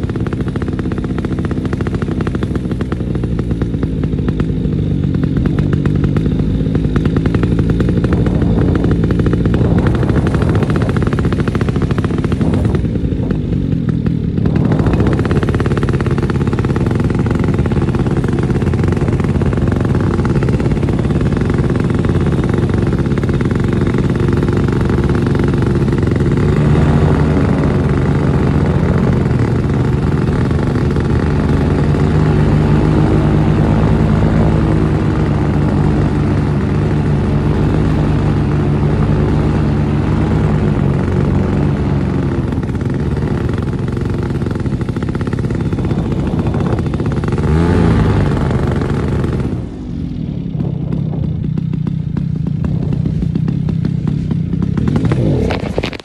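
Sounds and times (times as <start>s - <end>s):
paramotor engine running: 0.0s - 56.0s.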